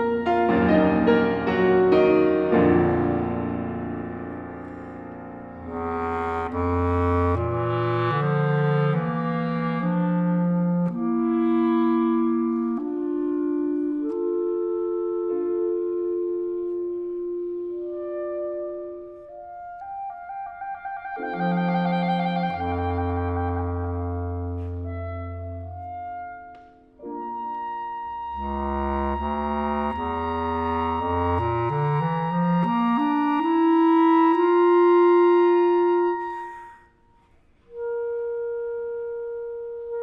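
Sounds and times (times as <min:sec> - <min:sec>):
loud piano chords: 0:00.0 - 0:12.5
clarinets playing slow passage: 0:00.0 - 0:40.0.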